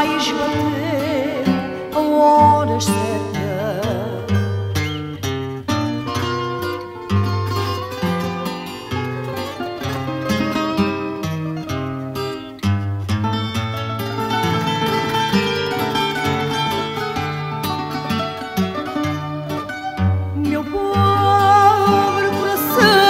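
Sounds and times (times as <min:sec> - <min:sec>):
guitar bass line: 0:00.0 - 0:23.0
plucked guitar melody: 0:00.0 - 0:23.0.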